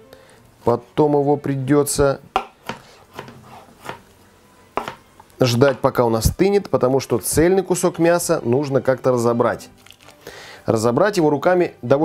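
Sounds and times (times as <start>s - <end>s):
knife knocking on cutting board: 4.8s - 5.0s.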